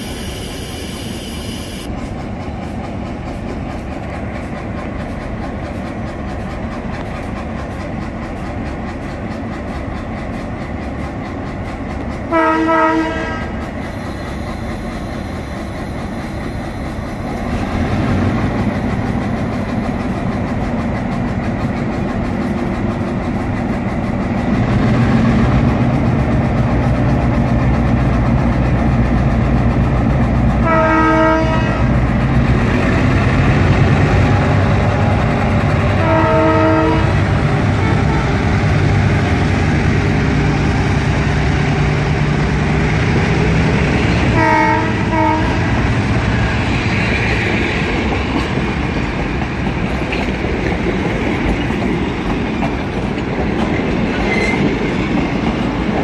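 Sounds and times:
diesel locomotive engine rumbling: 0.0 - 56.0
multi-note air horn blasts: 12.3 - 13.6, 30.6 - 31.8, 36.0 - 37.2, 44.3 - 45.6.

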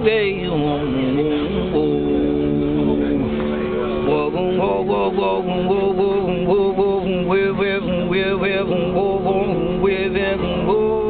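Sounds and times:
man singing wavering notes: 0.0 - 11.0
one-string cello drone: 0.4 - 11.0.

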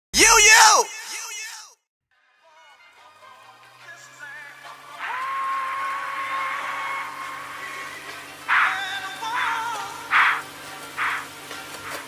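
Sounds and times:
echo of shouted call: 0.1 - 1.8, 5.0 - 7.7
person shouting: 0.1 - 1.8.

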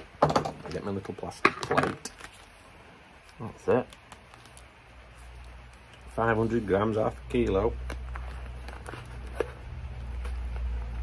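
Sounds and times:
packet crinkling open: 3.2 - 4.8.

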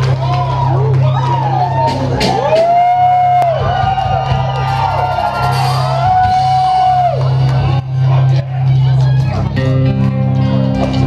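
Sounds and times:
audience whooping: 0.0 - 9.4
live rock band playing: 1.3 - 11.0.

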